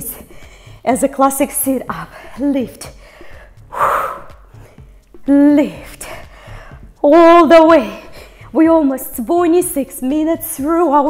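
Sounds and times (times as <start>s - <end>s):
woman's forceful breath: 3.0s - 5.1s, 6.1s - 7.0s.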